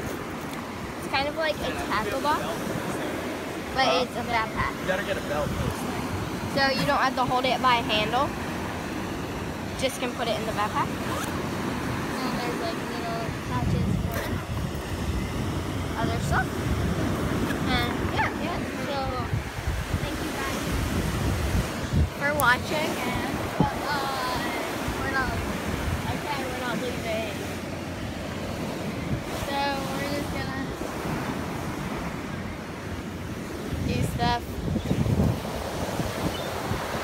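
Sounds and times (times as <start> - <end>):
ocean surf: 0.0 - 37.0
wind buffeting microphone: 0.0 - 37.0.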